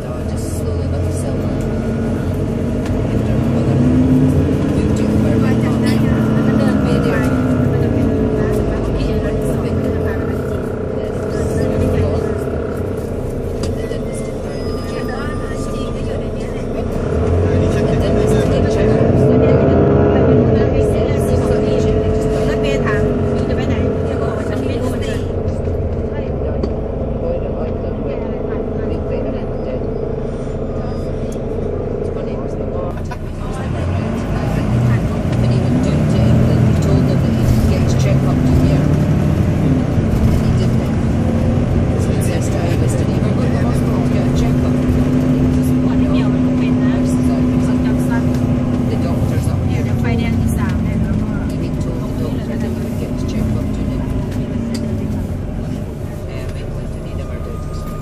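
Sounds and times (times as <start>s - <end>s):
bus diesel engine drone: 0.0s - 58.0s.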